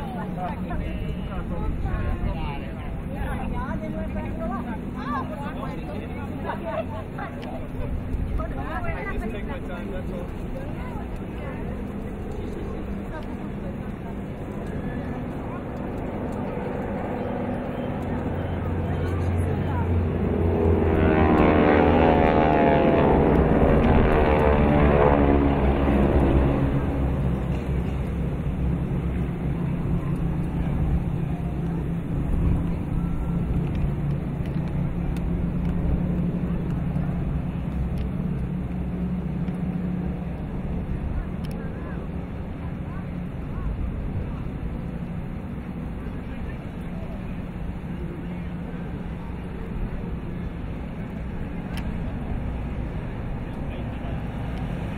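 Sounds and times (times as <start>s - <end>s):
low steady drone: 0.0s - 54.9s
propeller aircraft passing overhead: 0.0s - 54.9s.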